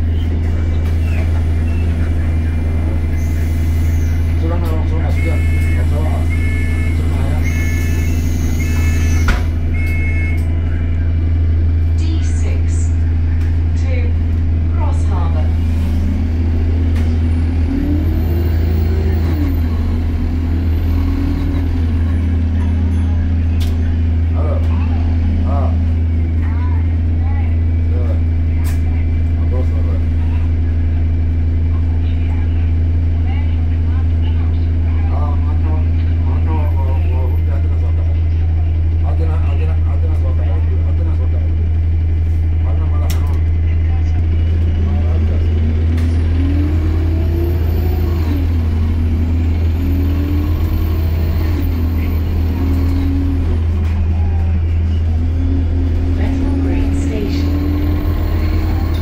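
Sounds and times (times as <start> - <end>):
bus engine humming: 0.0 - 59.0
passengers talking: 0.0 - 59.0.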